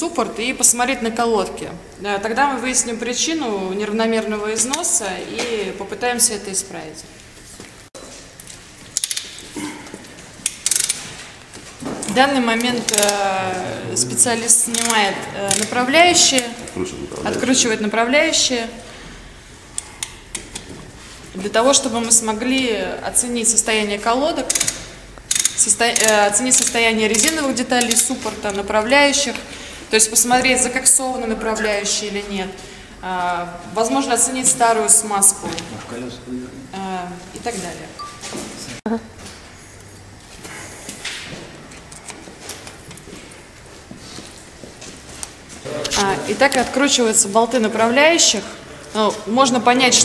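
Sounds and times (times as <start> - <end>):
workshop room noise: 0.0 - 50.0
ratchet wrench clicking: 9.0 - 9.4, 10.4 - 11.1, 12.6 - 13.2, 14.7 - 16.5, 24.4 - 28.2.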